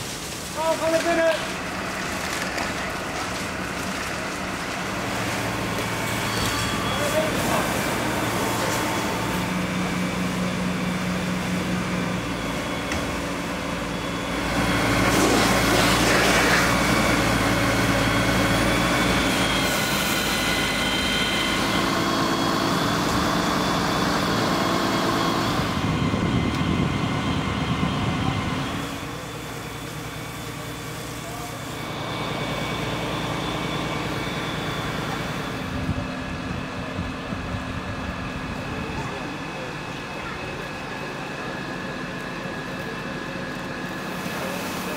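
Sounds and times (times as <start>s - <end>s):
fire engine pump running: 0.0s - 44.9s.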